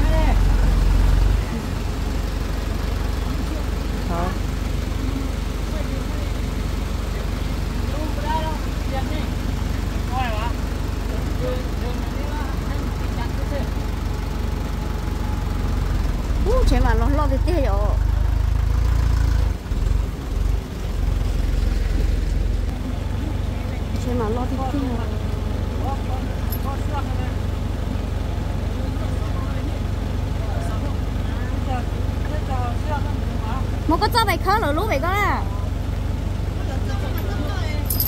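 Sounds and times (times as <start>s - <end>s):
diesel tractor engine idling: 0.0s - 38.0s.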